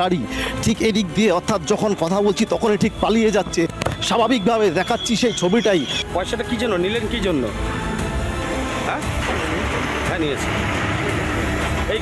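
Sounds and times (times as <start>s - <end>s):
men speaking: 0.0s - 8.0s, 8.6s - 12.0s
vehicle engine running: 9.2s - 12.0s.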